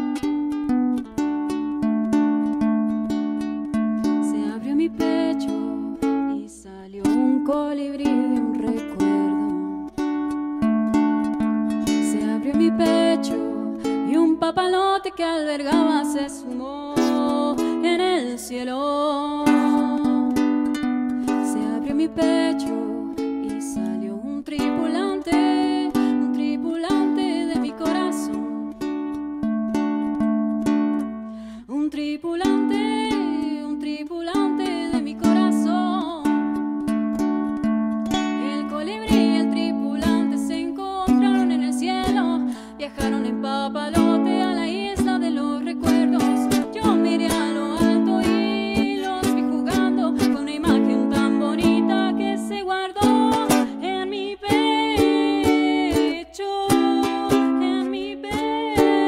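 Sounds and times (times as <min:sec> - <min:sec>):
woman singing: 0:00.0 - 0:29.4, 0:31.0 - 0:59.0
strummed ukulele: 0:00.0 - 0:59.0.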